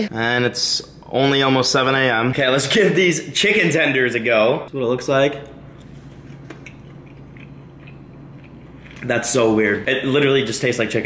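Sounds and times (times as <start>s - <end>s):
low room hum: 0.0s - 11.0s
faint chewing: 5.7s - 9.6s.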